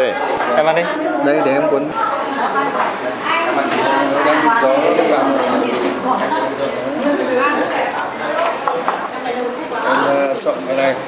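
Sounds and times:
people talking: 0.0s - 11.0s
dishes clinking: 8.0s - 9.5s.

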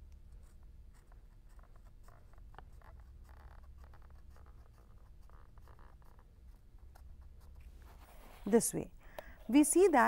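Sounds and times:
low background hum: 0.0s - 10.0s
marker scratching on paper: 0.3s - 10.0s.

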